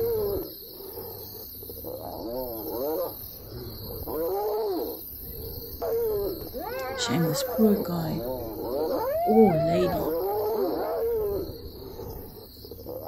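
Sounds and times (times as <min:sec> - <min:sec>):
hyenas calling: 0:05.8 - 0:12.2.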